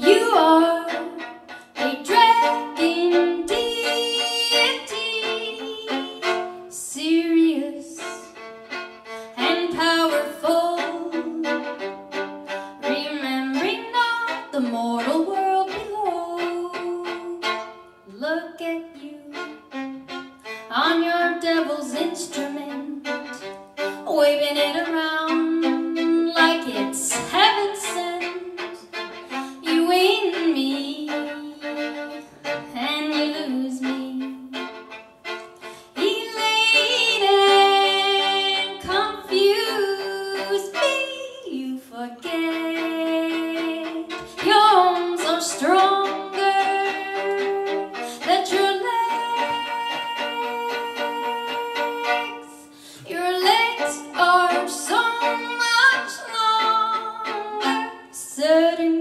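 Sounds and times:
solo violin: 0.0 - 59.0.

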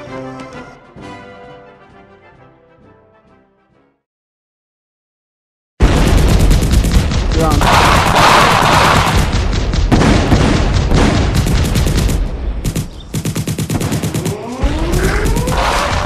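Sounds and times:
rapid machine-gun fire: 5.8 - 16.0.

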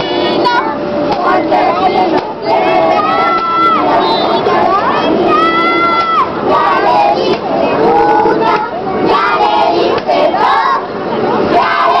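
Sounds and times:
children and adults singing chant: 0.0 - 12.0.

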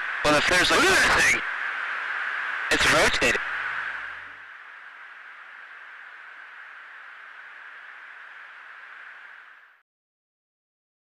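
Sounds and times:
radio static hiss: 0.0 - 9.8.

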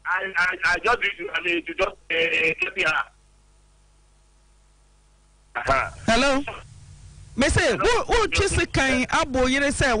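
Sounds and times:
speech over telephone line: 0.0 - 3.2
faint steady hum: 0.0 - 10.0.

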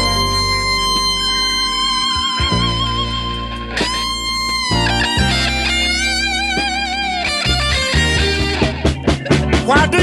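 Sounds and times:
electric guitar solo: 0.0 - 9.4
steady bass line: 0.0 - 10.0.

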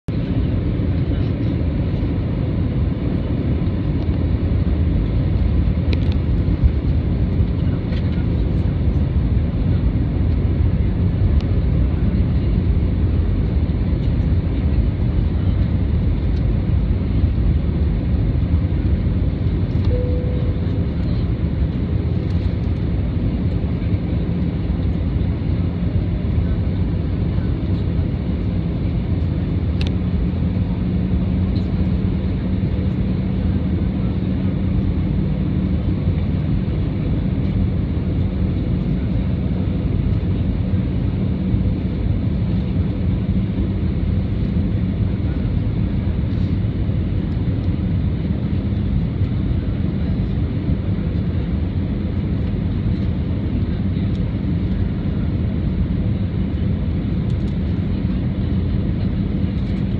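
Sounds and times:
airplane cabin engine rush: 0.1 - 59.9.

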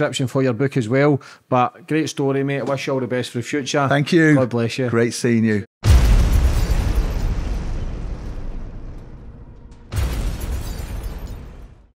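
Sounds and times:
explosion with deep rumble: 5.8 - 11.9.

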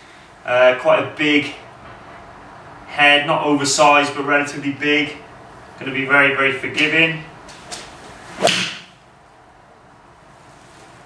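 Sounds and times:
golf iron striking ball: 8.4 - 9.0.

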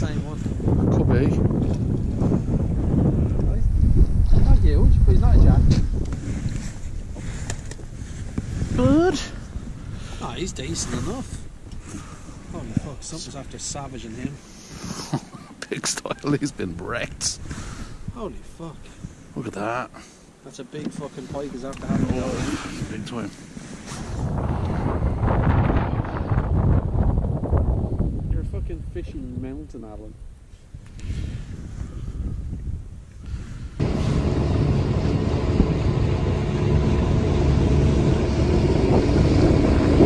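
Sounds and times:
wind buffeting microphone: 0.0 - 14.8, 21.3 - 40.0.

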